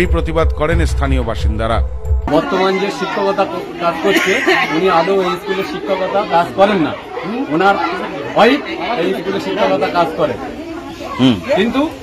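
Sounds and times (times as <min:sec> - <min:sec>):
man speaking: 0:00.0 - 0:06.9
other voices: 0:00.0 - 0:12.0.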